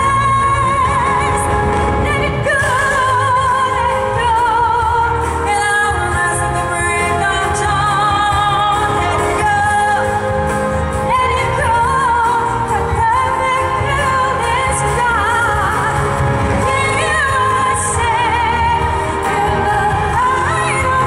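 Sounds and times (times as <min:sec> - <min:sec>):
amplified backing track: 0:00.0 - 0:21.0
person singing pop ballad: 0:00.0 - 0:21.0.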